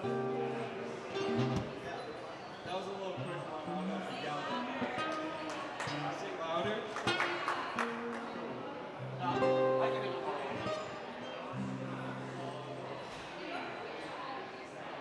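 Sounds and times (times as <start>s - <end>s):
acoustic guitar: 0.0s - 13.3s.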